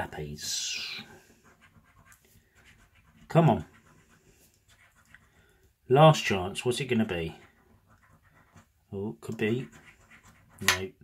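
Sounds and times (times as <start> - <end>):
coin scratching a scratchcard: 0.8 - 5.2, 7.5 - 8.7, 9.4 - 10.9.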